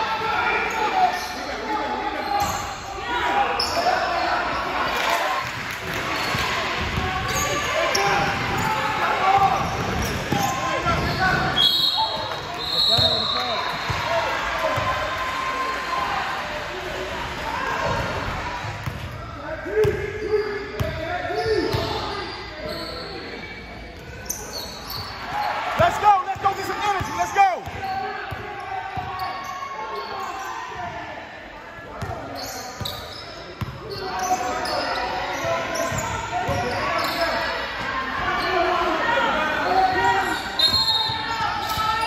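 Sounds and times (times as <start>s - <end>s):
voices echoing in hall: 0.0s - 42.0s
sneakers squeaking on court: 2.3s - 2.9s, 5.5s - 14.1s, 20.7s - 30.5s, 32.0s - 37.6s, 39.7s - 42.0s.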